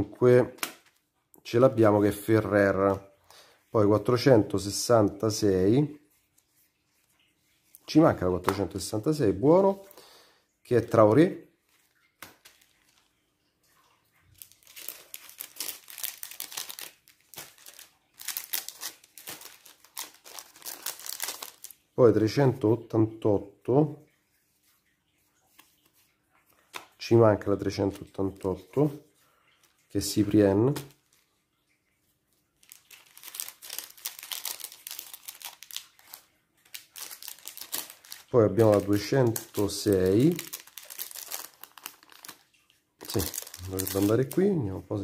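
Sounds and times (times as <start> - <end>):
plastic wrapping crinkling: 11.6 - 22.0, 29.6 - 31.3, 32.6 - 45.0.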